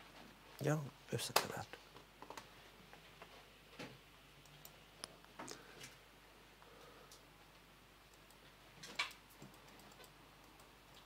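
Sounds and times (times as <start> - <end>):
computer keys clicking: 8.1 - 11.0.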